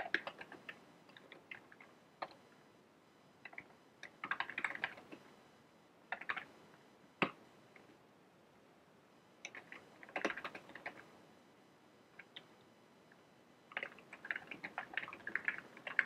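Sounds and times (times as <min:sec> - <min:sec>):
computer keyboard typing: 0:00.0 - 0:02.4, 0:03.4 - 0:05.2, 0:06.1 - 0:06.5, 0:09.4 - 0:11.1, 0:12.2 - 0:12.5, 0:13.7 - 0:16.0.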